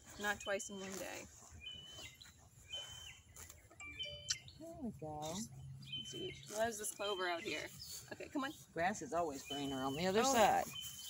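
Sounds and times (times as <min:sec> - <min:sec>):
faint high bird chirps: 0:01.6 - 0:08.7.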